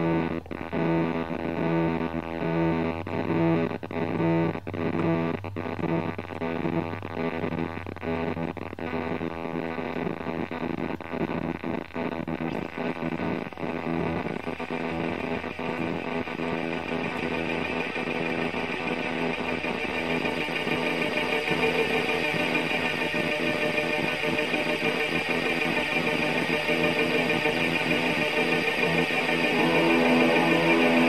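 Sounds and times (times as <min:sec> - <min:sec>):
echoing electric guitar: 0:12.4 - 0:31.0.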